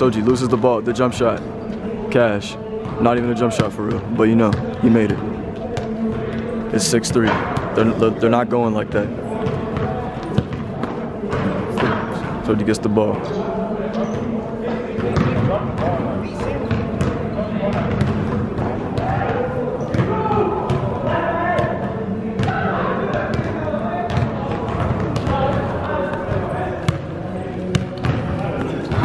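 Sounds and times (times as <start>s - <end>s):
indistinct voices in echoing hall: 0.0s - 29.0s
basketball bouncing on court: 9.4s - 12.4s, 15.0s - 21.8s, 22.4s - 27.0s, 27.7s - 29.0s.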